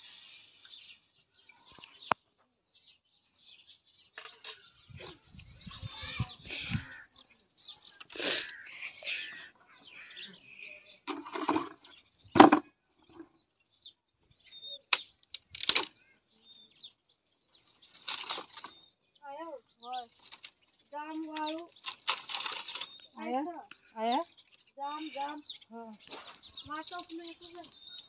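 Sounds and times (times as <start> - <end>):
dry sticks cracking: 14.9 - 15.9, 18.0 - 18.7, 21.4 - 22.9.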